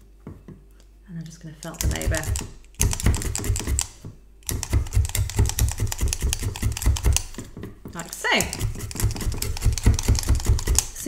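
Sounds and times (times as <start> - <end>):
felting needle stabbing into wool: 1.6 - 11.0.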